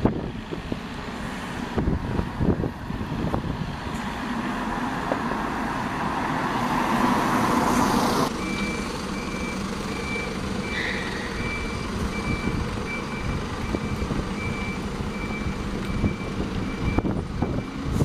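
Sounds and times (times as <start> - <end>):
bus engine running: 0.0 - 18.0
loud close engine noise: 0.0 - 18.0
reversing alarm beeps: 8.4 - 17.9.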